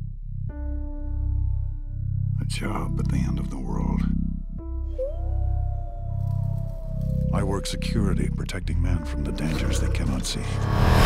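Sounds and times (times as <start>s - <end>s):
wolf howling: 4.9s - 10.2s.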